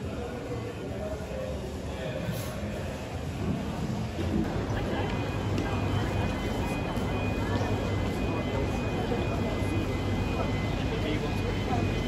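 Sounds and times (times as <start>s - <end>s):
voices of passers-by: 4.3s - 12.0s.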